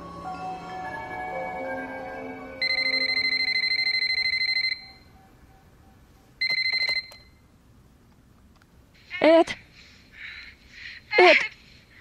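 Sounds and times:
electronic telephone ringing: 2.6 - 5.2, 6.4 - 7.4.

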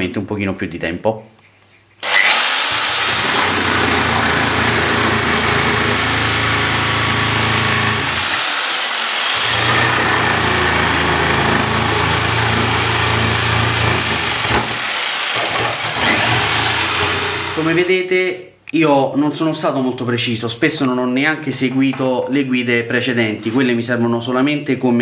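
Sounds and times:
electric jigsaw cutting wood: 2.0 - 17.9.

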